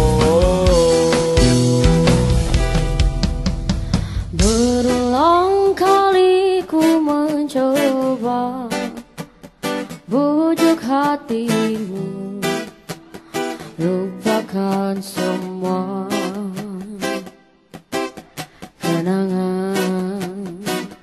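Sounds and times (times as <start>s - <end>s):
woman singing pop song: 0.0s - 2.7s, 4.0s - 17.4s, 18.6s - 21.0s
acoustic guitar strumming: 0.0s - 21.0s.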